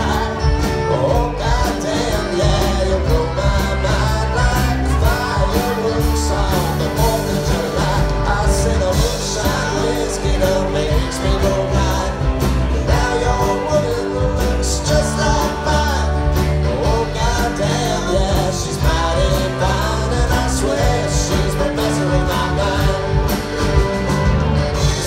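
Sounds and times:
live country-rock band: 0:00.0 - 0:25.0.

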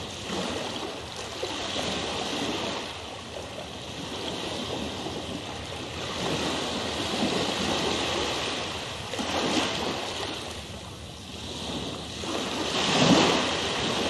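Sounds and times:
rushing water: 0:00.0 - 0:14.0.

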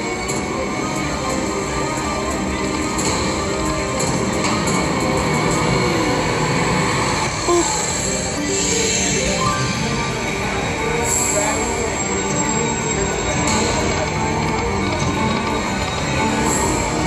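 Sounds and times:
slot machine music and effects: 0:00.0 - 0:17.0.

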